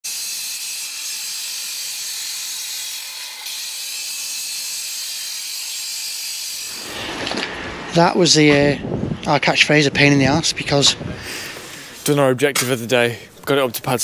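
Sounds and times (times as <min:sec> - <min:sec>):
disc cutter cutting concrete: 0:00.0 - 0:07.0
man speaking: 0:12.0 - 0:14.0.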